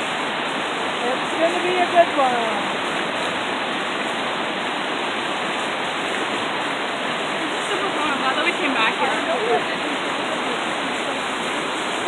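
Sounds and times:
creek rushing over rocks: 0:00.0 - 0:12.0.

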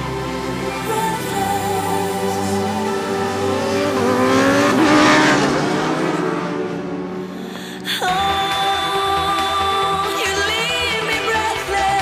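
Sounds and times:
motorcycle engine passing at speed: 0:02.4 - 0:07.2.

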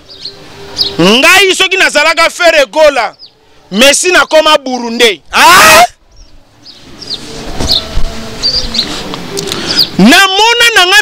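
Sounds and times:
small birds chirping: 0:00.0 - 0:01.7, 0:02.8 - 0:10.6
low background noise: 0:00.0 - 0:11.0.

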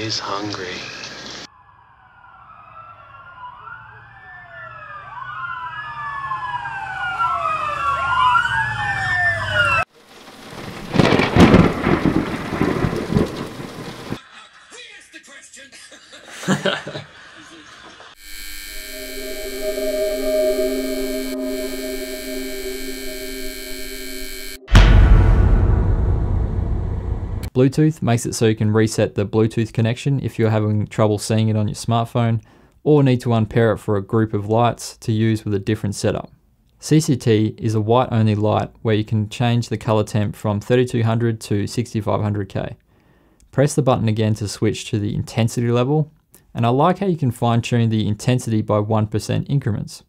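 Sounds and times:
rain: 0:00.0 - 0:01.5, 0:09.9 - 0:14.2
sirens wailing: 0:01.5 - 0:09.9, 0:18.2 - 0:24.8
rumbling thunder: 0:10.1 - 0:14.2, 0:24.7 - 0:27.5
loud thunder crack: 0:10.2 - 0:14.2, 0:24.4 - 0:27.5
electric lamp buzz: 0:18.2 - 0:24.8.

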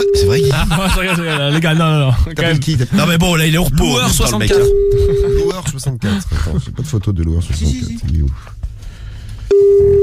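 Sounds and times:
telephone line beep: 0:00.0 - 0:00.6, 0:04.5 - 0:05.5, 0:09.5 - 0:10.0.

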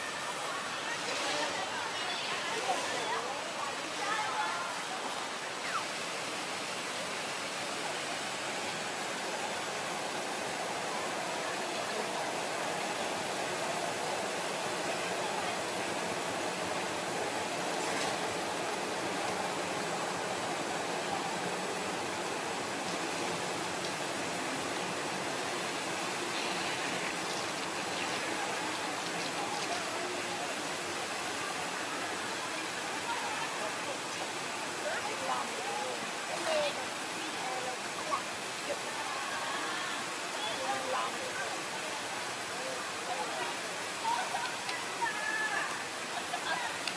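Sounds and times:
fountain water running: 0:00.0 - 0:46.9.

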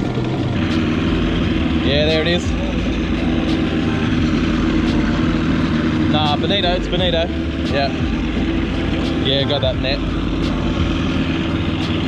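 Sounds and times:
outboard motor droning: 0:00.0 - 0:12.0.

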